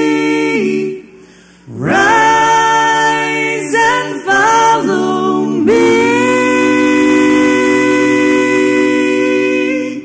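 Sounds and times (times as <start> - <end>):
a cappella group singing: 0.0 - 10.0.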